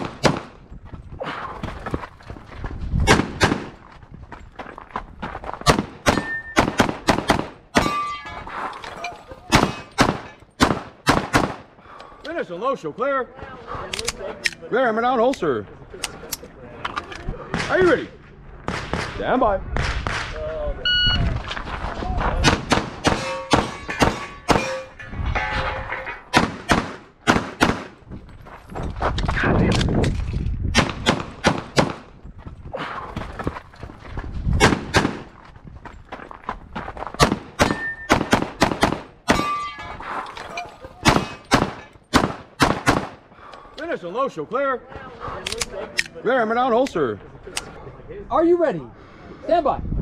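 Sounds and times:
pistol shots: 0.0s - 0.5s, 3.0s - 3.8s, 5.7s - 8.0s, 9.5s - 11.6s, 22.4s - 24.8s, 26.3s - 28.0s, 30.8s - 32.1s, 34.6s - 35.3s, 37.2s - 39.5s, 41.0s - 43.2s.

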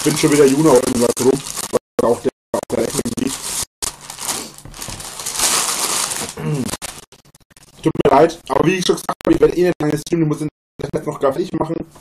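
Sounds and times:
crinkling rustling noise: 3.2s - 7.8s.

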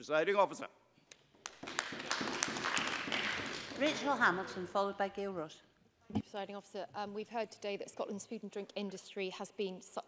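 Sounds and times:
applause: 1.4s - 4.6s.

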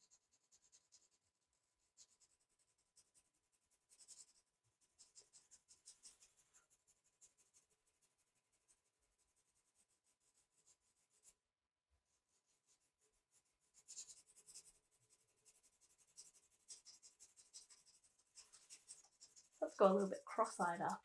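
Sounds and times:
pencil scratching on paper: 0.0s - 11.4s, 12.0s - 21.0s.

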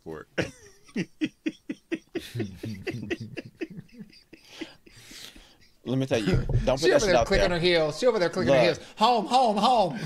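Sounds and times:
breathy laughter: 0.4s - 5.6s
man speaking: 2.2s - 3.7s, 5.8s - 10.0s.

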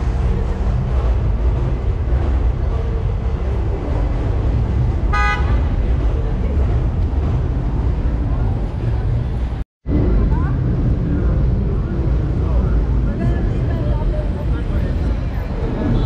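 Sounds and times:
rumble of passing cars: 0.0s - 16.0s
vehicle horn toot: 5.1s - 5.7s.

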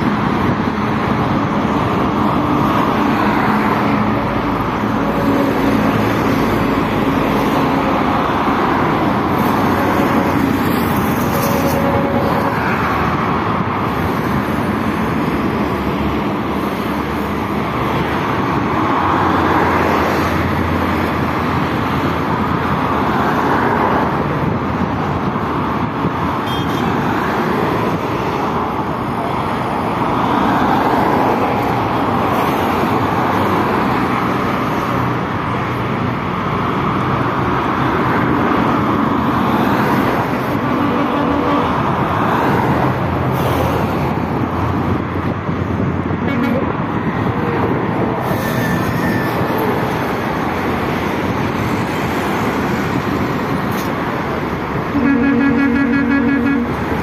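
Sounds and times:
highway traffic passing: 0.0s - 57.0s.

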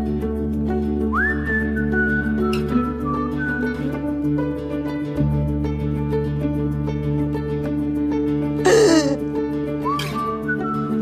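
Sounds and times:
whistled melody: 1.0s - 4.2s, 9.8s - 11.0s.

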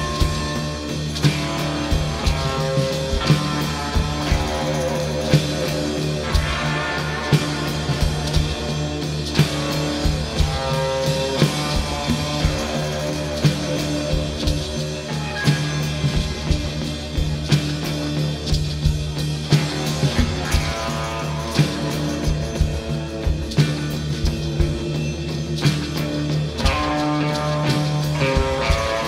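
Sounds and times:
rock band playing: 0.0s - 29.0s.

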